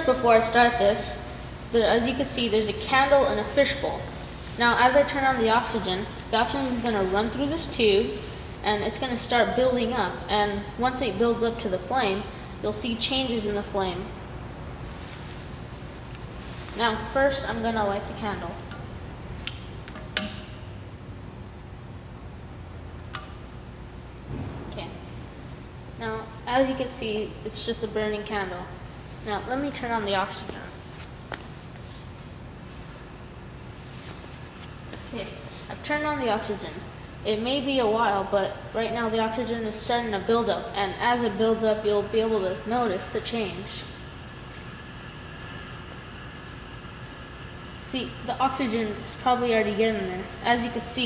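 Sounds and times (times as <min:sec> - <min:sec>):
gas hissing through tube: 0:41.2 - 0:50.9.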